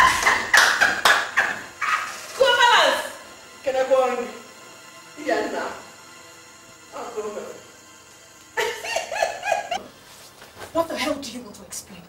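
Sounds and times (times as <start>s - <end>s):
woman laughing loudly: 0.0s - 2.2s, 8.6s - 9.8s.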